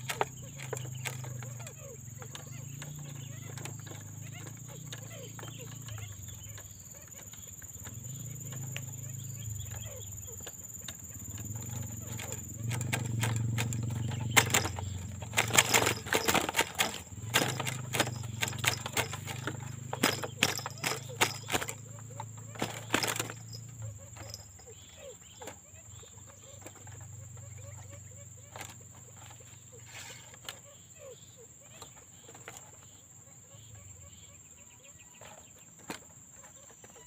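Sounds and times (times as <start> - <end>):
bird wings flapping against cage: 0.0 - 24.7, 28.5 - 30.6.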